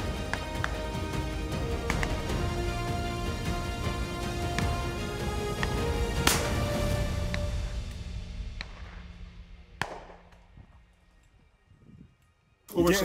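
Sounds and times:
background music sustained tones: 0.0s - 13.0s
shotgun shots: 1.8s - 2.4s, 4.5s - 7.4s, 9.8s - 10.6s.

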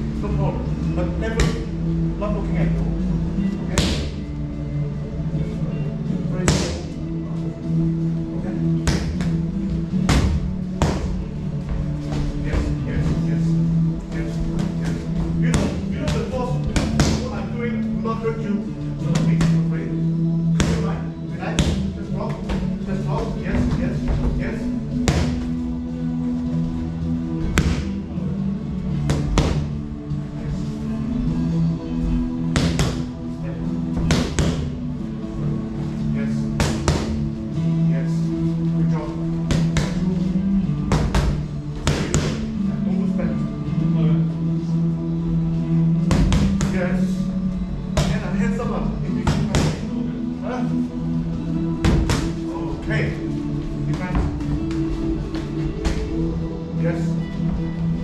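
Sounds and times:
background music: 0.0s - 58.0s
punches smacking focus mitts: 36.6s - 37.2s.

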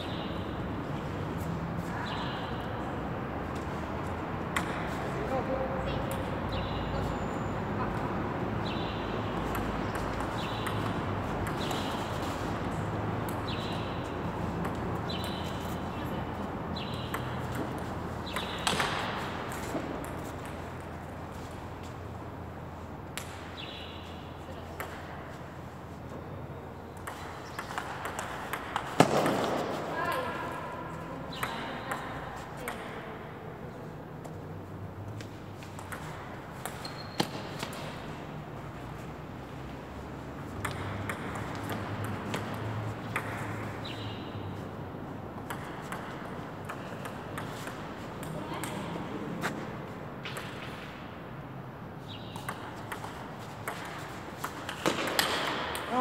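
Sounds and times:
ping pong ball clicking: 9.4s - 12.0s, 14.6s - 15.4s, 16.8s - 19.0s, 26.9s - 29.2s, 40.5s - 44.2s, 45.4s - 48.8s, 50.2s - 50.8s, 52.2s - 55.9s.

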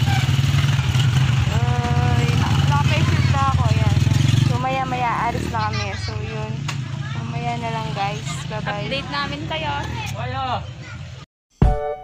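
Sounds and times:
vehicle engine rumbling: 0.0s - 11.2s
people talking: 1.5s - 11.0s.

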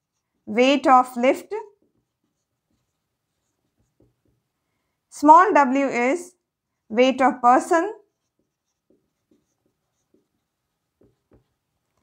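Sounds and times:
marker pen writing on whiteboard: 0.0s - 4.7s, 7.4s - 12.0s.

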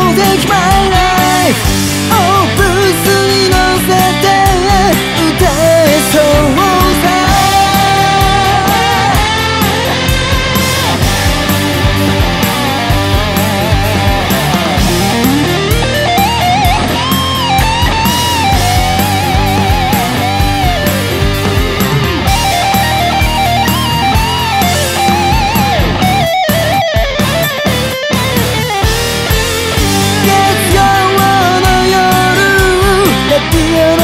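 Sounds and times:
electric guitar solo: 0.0s - 34.0s
rock band bass and drums: 0.0s - 34.0s.

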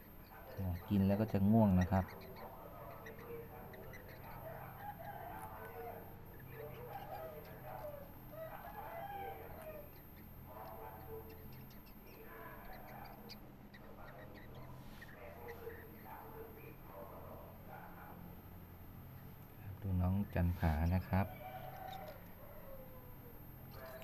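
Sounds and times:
faint low hum: 0.0s - 24.0s
parrot chick chirping: 0.0s - 24.0s.

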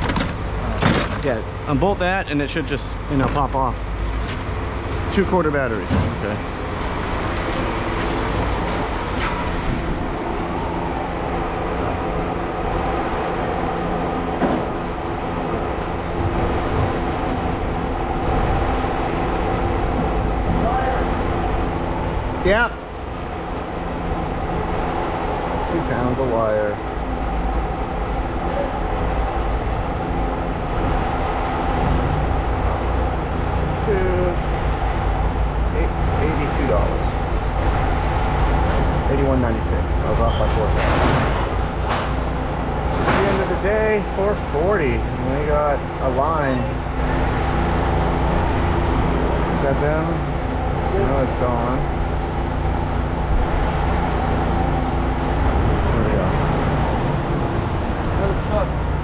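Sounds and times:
engine humming drone: 0.0s - 59.0s.

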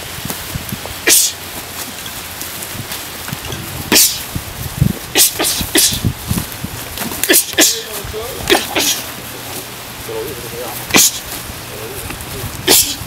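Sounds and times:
steady outdoor hiss: 0.0s - 13.0s
fighters exhaling sharply: 5.1s - 6.1s, 12.6s - 13.0s.

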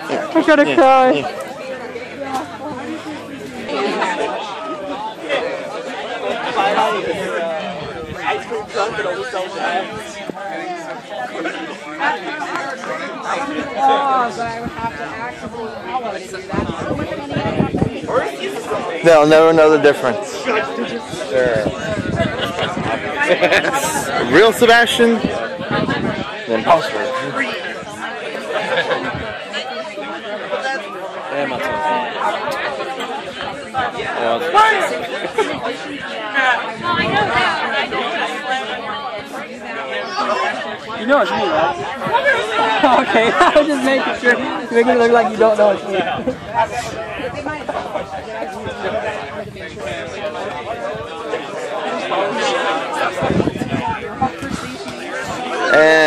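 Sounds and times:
people chattering: 0.0s - 56.0s.

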